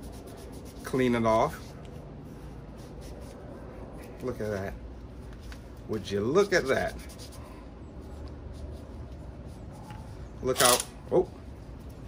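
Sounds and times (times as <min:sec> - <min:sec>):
rag wiping a tool: 0:05.6 - 0:10.6.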